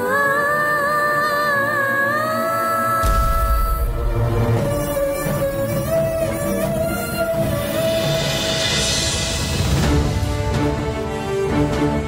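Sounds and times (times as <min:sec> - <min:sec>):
dramatic droning background score: 0:00.0 - 0:09.9.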